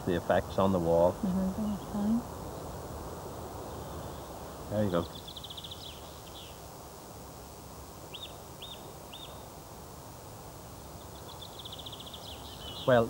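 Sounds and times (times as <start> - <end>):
small birds chirping: 0.0 - 13.0
bird trilling: 11.1 - 13.0.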